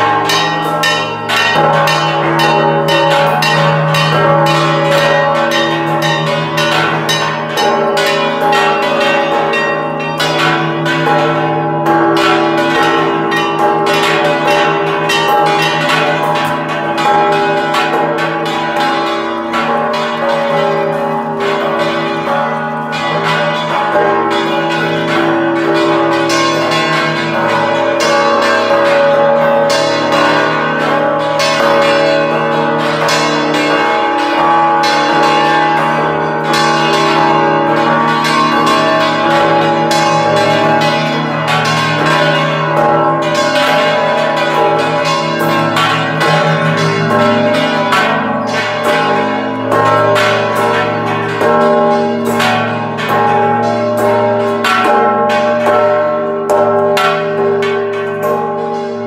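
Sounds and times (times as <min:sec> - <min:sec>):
church bells ringing fast: 0:00.0 - 0:59.0.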